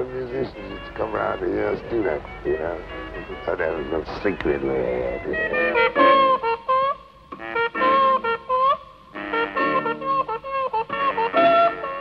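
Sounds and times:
jazz trumpet: 0:00.0 - 0:12.0.

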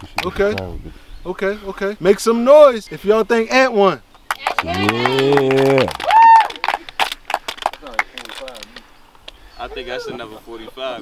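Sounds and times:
people clapping: 0:00.0 - 0:00.7, 0:04.3 - 0:09.4
crowd shouting: 0:04.6 - 0:06.6.

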